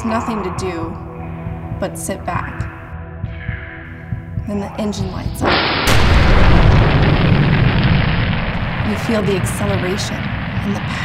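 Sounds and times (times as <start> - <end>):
rocket engines rumbling: 4.9 - 11.0.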